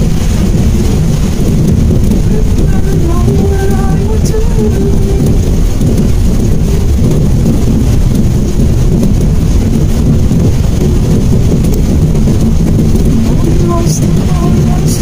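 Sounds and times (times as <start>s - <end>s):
rain on a moving car: 0.0s - 15.0s
tyre noise on wet road: 0.0s - 15.0s.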